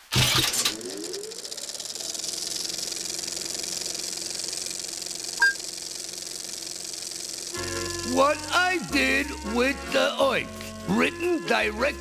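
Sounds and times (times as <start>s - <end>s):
film projector running: 0.0s - 11.0s.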